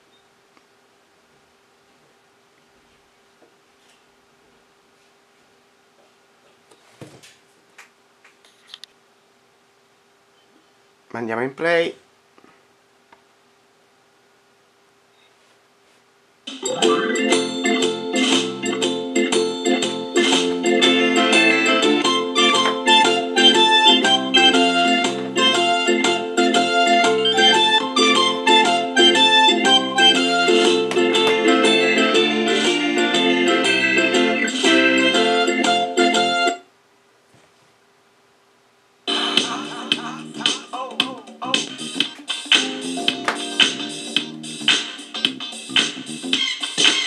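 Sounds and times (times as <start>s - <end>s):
instrumental keyboard music: 16.5s - 36.6s, 39.1s - 47.0s.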